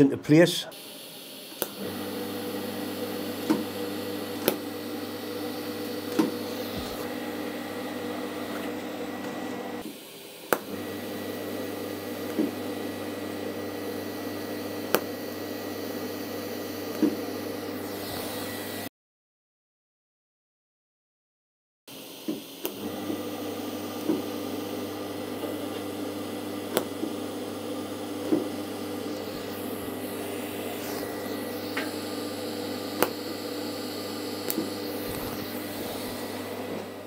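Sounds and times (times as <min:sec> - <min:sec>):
welding arc buzzing hum: 0:00.7 - 0:18.9, 0:22.0 - 0:37.0.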